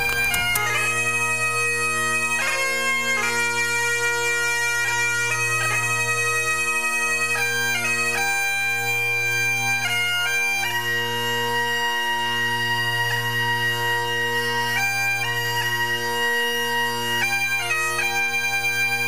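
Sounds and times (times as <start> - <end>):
bagpipe music: 0.0 - 19.0.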